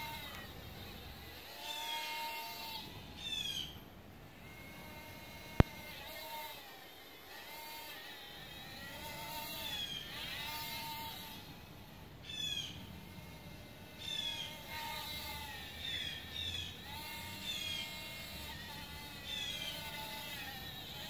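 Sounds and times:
birds whistling calls: 3.1 - 3.8, 12.2 - 12.8.

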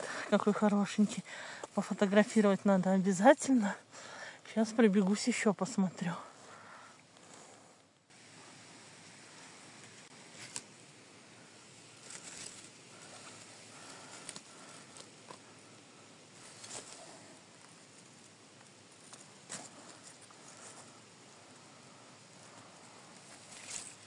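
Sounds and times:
rustling of dry leaves: 0.0 - 24.0.

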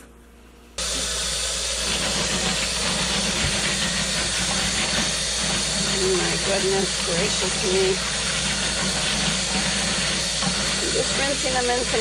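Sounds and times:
tap water running: 0.8 - 12.0.

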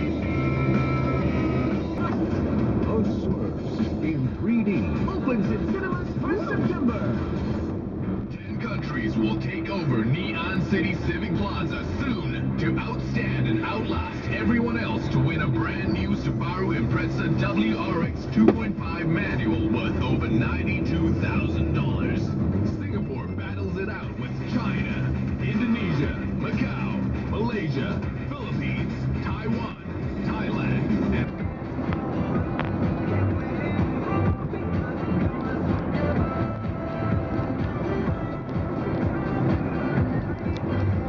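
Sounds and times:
engine and road noise hum: 0.0 - 41.0
radio announcer's voice: 1.8 - 34.2.

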